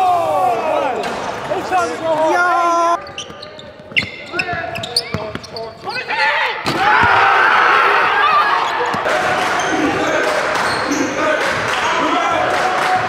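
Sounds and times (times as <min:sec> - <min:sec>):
people shouting: 0:00.0 - 0:03.0, 0:06.1 - 0:13.0
basketball bouncing on court: 0:03.0 - 0:05.6.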